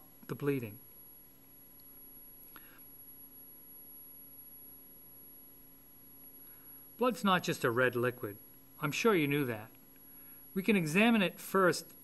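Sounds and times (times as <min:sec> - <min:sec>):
faint hum and hiss: 0:00.0 - 0:12.0
thin high whine: 0:00.0 - 0:12.0.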